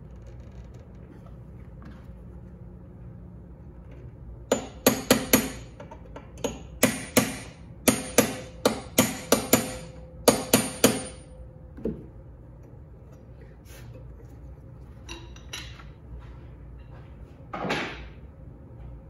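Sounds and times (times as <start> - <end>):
hammer striking metal punch: 4.5 - 11.3.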